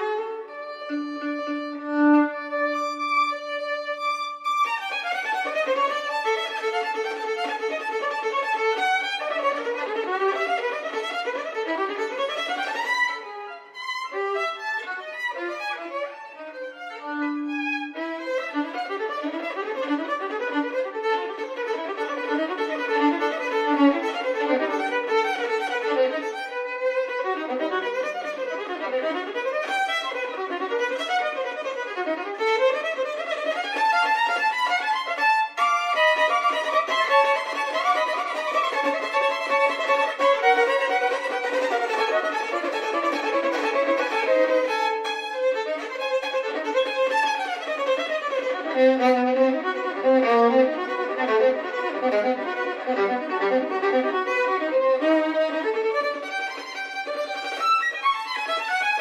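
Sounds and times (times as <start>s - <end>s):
solo violin: 0.0s - 59.0s.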